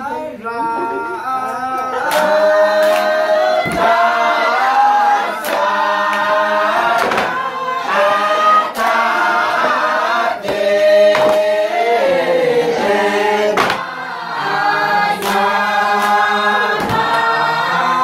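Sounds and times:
group singing unaccompanied: 0:00.0 - 0:18.0
sharp knocks: 0:10.5 - 0:11.5, 0:13.6 - 0:13.9, 0:16.8 - 0:17.2.

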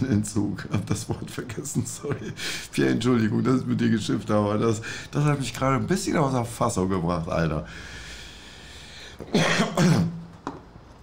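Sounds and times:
man clearing his throat: 0:09.2 - 0:10.2.

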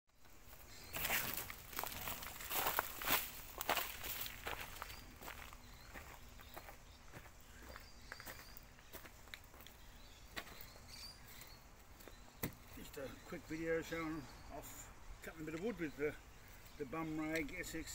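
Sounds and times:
footsteps on leaves and twigs: 0:00.2 - 0:14.3.

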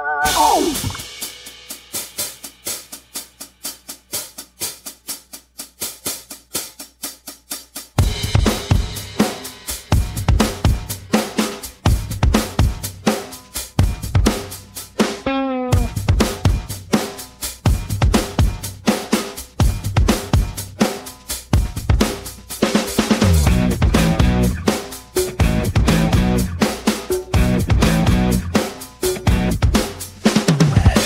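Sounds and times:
heavy kick drum: 0:00.3 - 0:01.2, 0:08.0 - 0:09.2, 0:09.8 - 0:11.0, 0:11.8 - 0:13.0, 0:15.8 - 0:16.9, 0:17.7 - 0:18.8, 0:19.6 - 0:20.6, 0:21.5 - 0:22.2, 0:23.2 - 0:24.7, 0:25.3 - 0:26.6, 0:27.3 - 0:31.0
hi-hat and snare hits: 0:00.4 - 0:15.2, 0:15.8 - 0:31.0.

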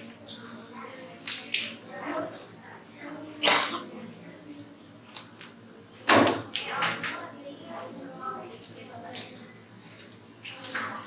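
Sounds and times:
children talking indistinctly: 0:00.0 - 0:11.0.

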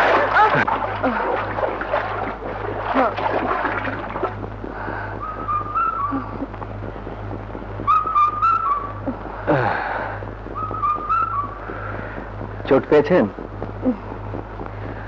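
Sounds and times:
low electrical hum: 0:00.0 - 0:15.0
whistled tune with trills: 0:05.2 - 0:06.5, 0:07.8 - 0:09.1, 0:10.5 - 0:11.8.

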